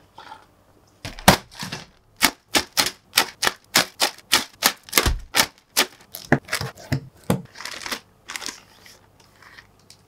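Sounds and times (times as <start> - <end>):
plastic bags crinkling: 7.5 - 9.0.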